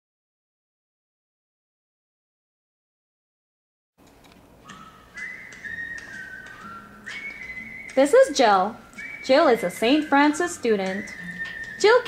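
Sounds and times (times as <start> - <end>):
whistling long held notes: 4.6 - 12.0.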